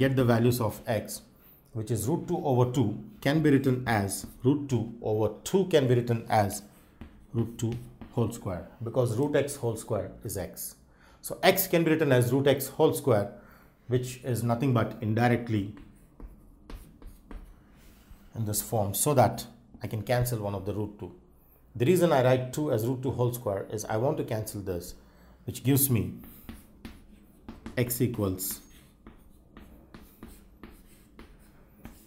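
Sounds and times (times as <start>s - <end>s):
chalk on chalkboard: 3.6s - 4.8s, 5.8s - 8.4s, 15.3s - 18.7s, 25.7s - 32.0s.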